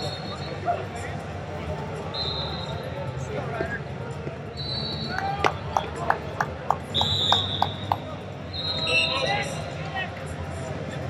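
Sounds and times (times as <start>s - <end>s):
hubbub of voices: 0.0s - 11.0s
referee whistle blasts: 6.9s - 9.3s.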